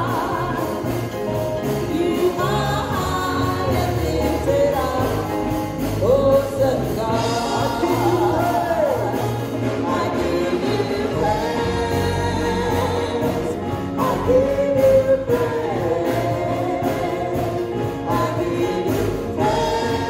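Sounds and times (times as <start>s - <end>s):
man singing into microphone: 2.0s - 20.0s
choir singing: 7.0s - 20.0s.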